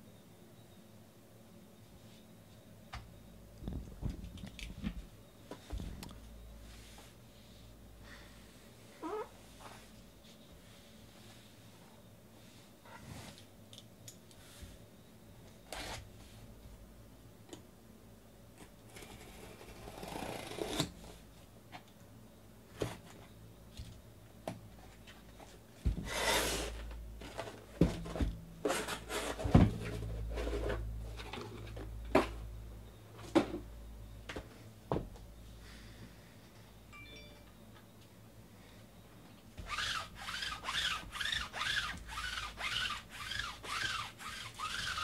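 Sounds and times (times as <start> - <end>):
cardboard scraping and rustling: 25.4 - 32.3.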